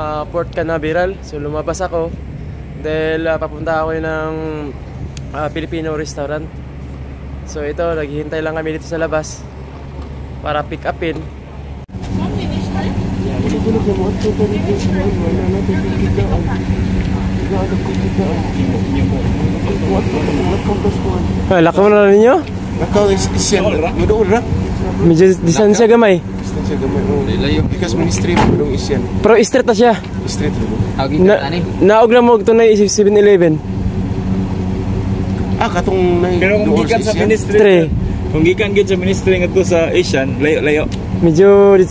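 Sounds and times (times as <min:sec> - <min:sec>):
people talking: 0:00.0 - 0:02.2, 0:02.8 - 0:06.5, 0:07.5 - 0:09.5, 0:10.4 - 0:11.3, 0:12.1 - 0:33.6, 0:35.4 - 0:41.9
van engine idling: 0:00.0 - 0:41.9
man's voice: 0:35.6 - 0:41.9.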